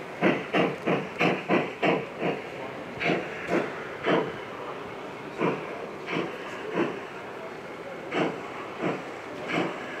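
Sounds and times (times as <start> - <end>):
steam hissing puffs: 0.0 - 4.6, 5.3 - 7.2, 8.0 - 10.0.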